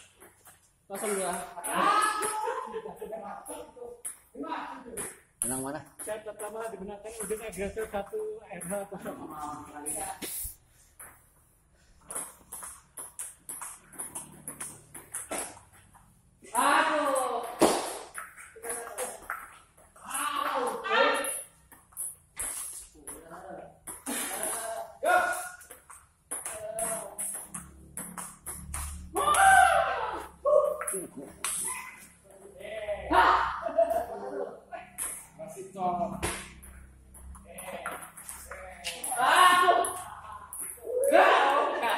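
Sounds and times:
players calling out: 1.0s - 2.9s, 20.0s - 21.6s, 26.3s - 41.9s.

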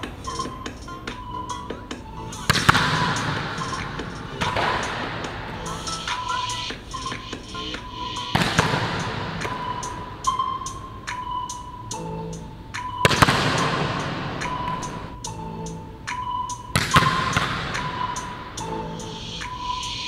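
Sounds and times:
background music with steady beat: 0.0s - 20.0s.

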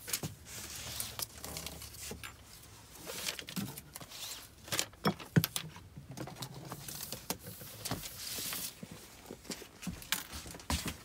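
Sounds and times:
clicks and knocks of items handled: 1.0s - 11.0s.

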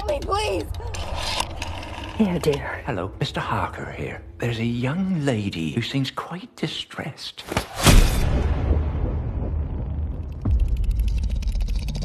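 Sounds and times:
steady low rumble: 8.2s - 12.0s.

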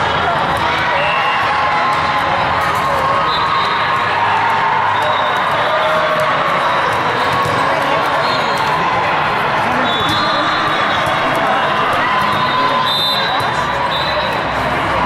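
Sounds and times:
babble of many voices: 0.0s - 15.0s.

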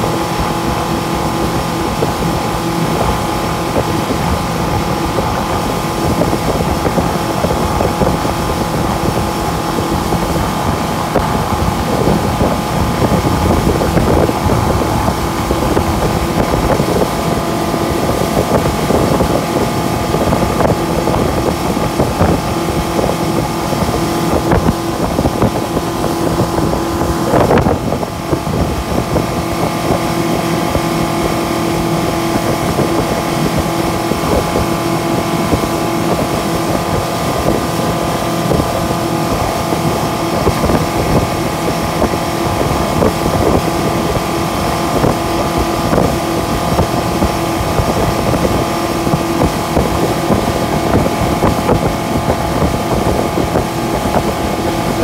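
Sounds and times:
outboard motor running steadily: 0.0s - 55.0s
rush of boat wake: 0.0s - 55.0s.

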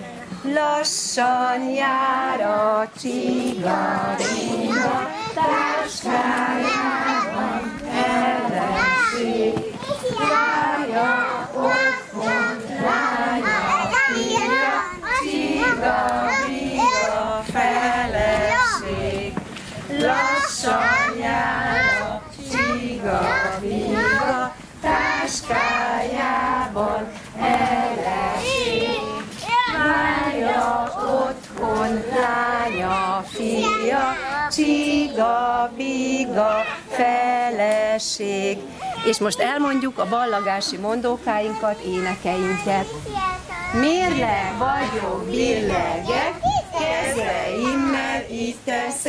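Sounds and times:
women and toddlers singing: 0.0s - 49.0s
children calling out: 3.7s - 17.3s, 20.0s - 26.3s, 28.0s - 30.0s, 32.3s - 35.1s, 36.2s - 37.0s, 38.6s - 44.2s, 44.8s - 48.2s.

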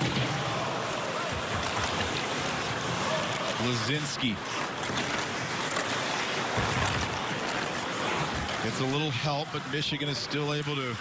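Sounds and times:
arena crowd din: 0.0s - 11.0s.

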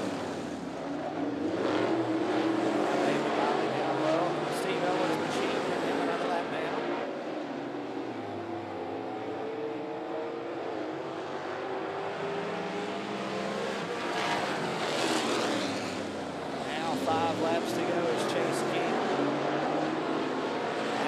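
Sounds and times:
cars passing by: 0.0s - 21.0s
race car engines running hard: 0.0s - 21.0s.

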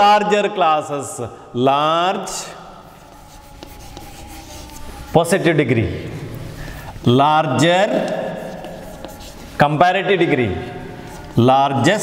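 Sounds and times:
chalk scratching on blackboard: 2.7s - 9.8s, 11.0s - 11.5s
chalk ticking on board: 2.9s - 5.1s, 7.9s - 9.6s.

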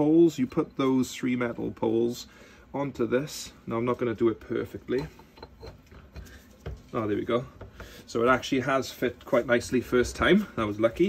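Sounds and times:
faint metal clicks and knocks: 4.9s - 7.0s.

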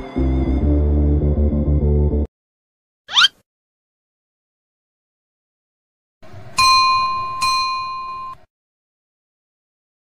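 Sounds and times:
notification bell ringing: 6.6s - 8.5s.

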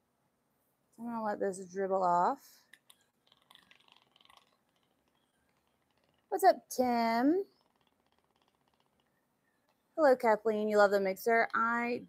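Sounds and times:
faint rapid ticking: 2.4s - 12.0s.

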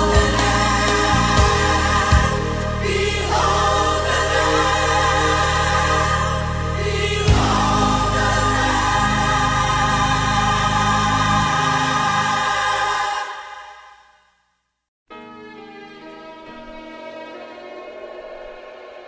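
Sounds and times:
gospel choir singing: 0.0s - 14.0s.

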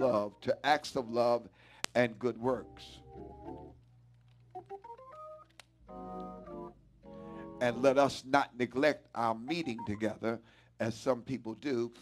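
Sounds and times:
organ playing softly: 0.0s - 1.4s, 2.0s - 3.8s, 4.5s - 10.4s.

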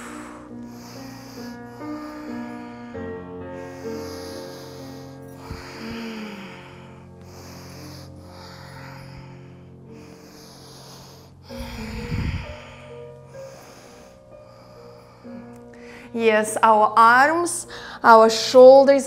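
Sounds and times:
breathing in and out: 0.0s - 16.2s, 17.7s - 18.0s
soft background music: 0.0s - 19.0s
low rumble on microphone: 11.6s - 12.8s.

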